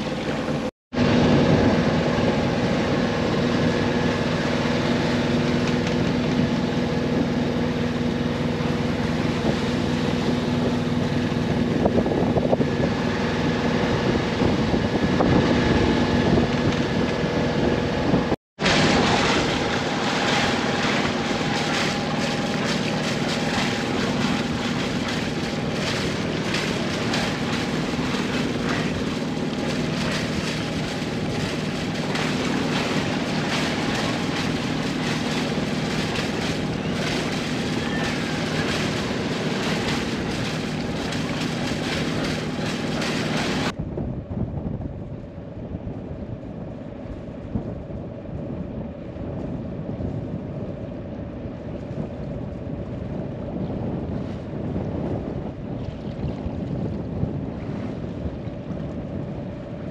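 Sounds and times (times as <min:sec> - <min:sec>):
water rushing: 0:00.0 - 0:11.8, 0:18.6 - 0:43.8
boat engine running: 0:00.0 - 0:43.9, 0:45.2 - 0:59.9.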